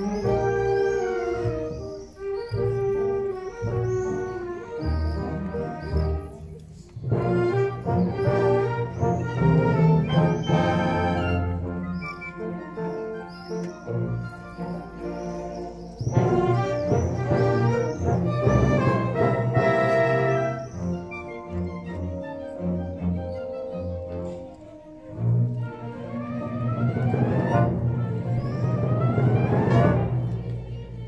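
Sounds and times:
orchestra playing classical music: 0:00.0 - 0:31.0.

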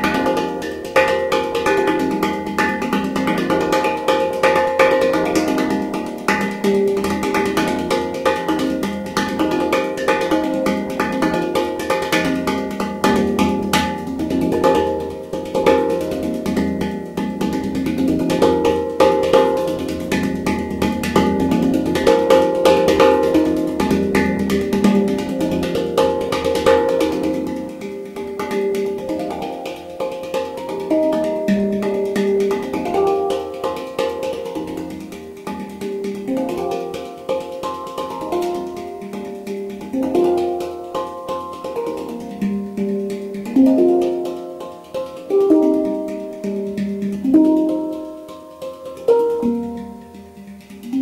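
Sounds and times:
handpan notes ringing: 0:00.0 - 0:51.0.

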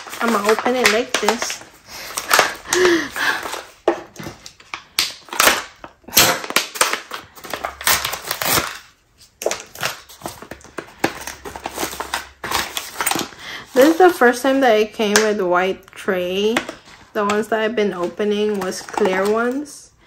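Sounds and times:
packaging tearing and crinkling: 0:00.0 - 0:14.0.

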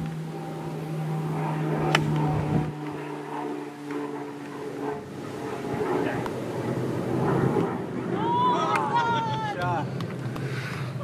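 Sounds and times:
engine humming: 0:00.0 - 0:11.0
golf club striking ball: 0:01.8 - 0:03.0.

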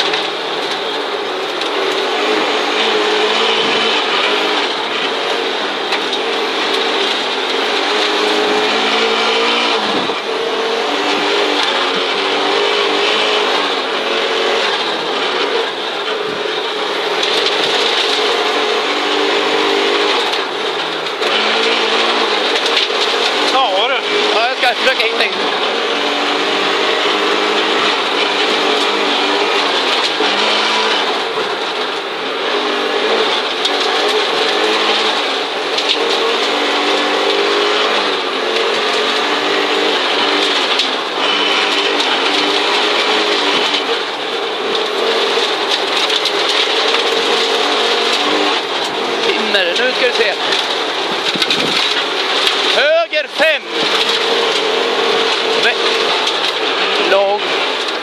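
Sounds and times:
turbocharged car engine revving: 0:00.0 - 0:58.0.

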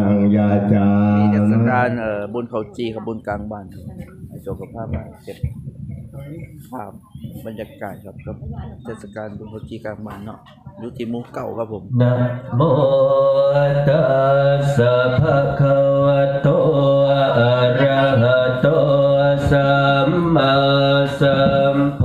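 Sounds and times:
group chanting in unison: 0:12.0 - 0:22.0.

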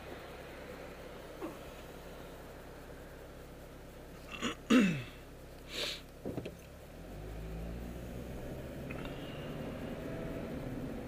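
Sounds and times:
car engine drone from inside: 0:00.0 - 0:11.0.

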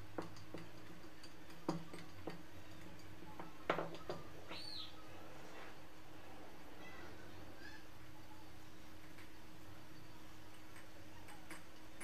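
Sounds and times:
rolling dough clicks and taps: 0:00.0 - 0:04.3, 0:10.5 - 0:12.0
faint steady hum: 0:00.0 - 0:12.0.

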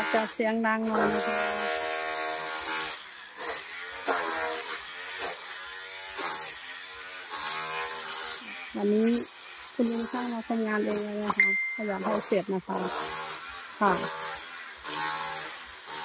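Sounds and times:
angle grinder cutting tile: 0:00.0 - 0:16.0.

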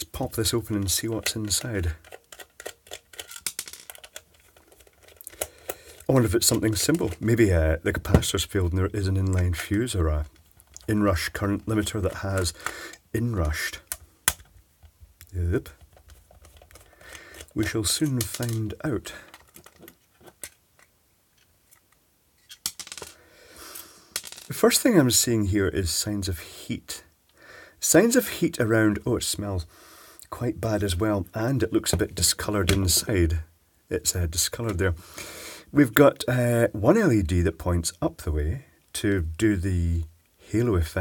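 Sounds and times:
screwdriver clicking and scraping: 0:00.7 - 0:07.3, 0:15.8 - 0:22.8
plastic case clicks and taps: 0:13.9 - 0:14.5.

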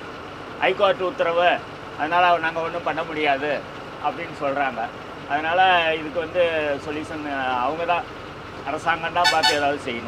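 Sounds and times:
truck engine running: 0:00.0 - 0:10.0
men calling out: 0:09.1 - 0:10.0.

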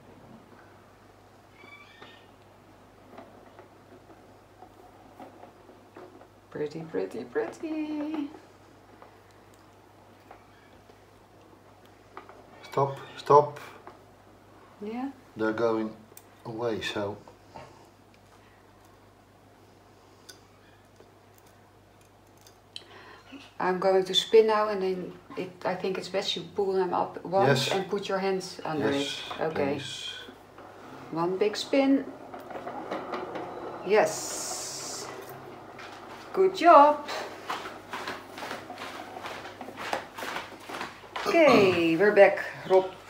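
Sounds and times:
faint rustles and clicks handling: 0:01.6 - 0:13.0.

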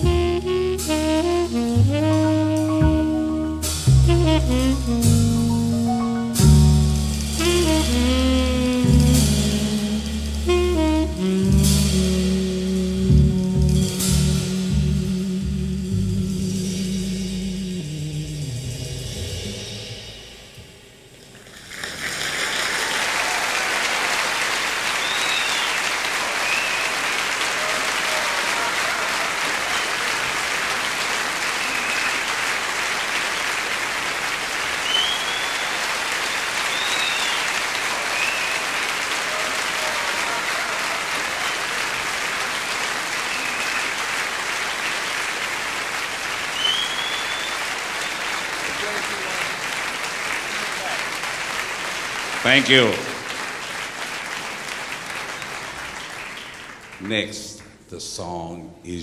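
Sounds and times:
music: 0:00.0 - 0:21.1
audience applauding: 0:21.4 - 0:57.9
high calls from audience: 0:22.6 - 0:33.2, 0:34.8 - 0:45.4.

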